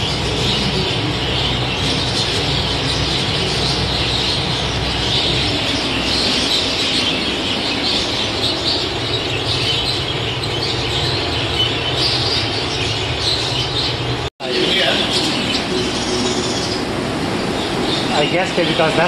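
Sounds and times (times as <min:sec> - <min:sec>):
budgerigars chattering: 0:00.0 - 0:19.0.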